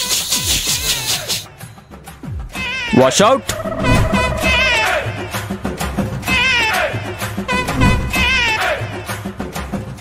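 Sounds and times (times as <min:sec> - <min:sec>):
high wavering cry: 0:03.5 - 0:05.3
deep sounds sliding down in pitch: 0:03.5 - 0:05.4.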